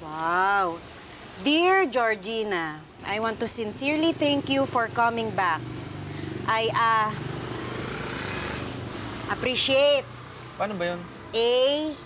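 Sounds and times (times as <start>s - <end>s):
vehicle engine humming: 1.5s - 12.0s.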